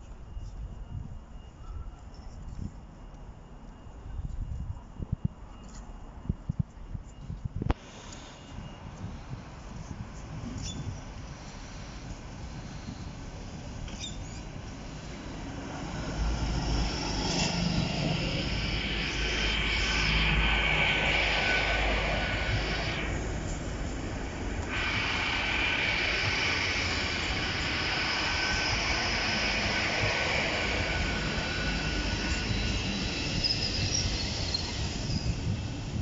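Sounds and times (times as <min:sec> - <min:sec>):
diesel train engine rumble: 0:00.0 - 0:36.0
steady high whine: 0:00.0 - 0:36.0
train wheels on rails: 0:01.4 - 0:36.0.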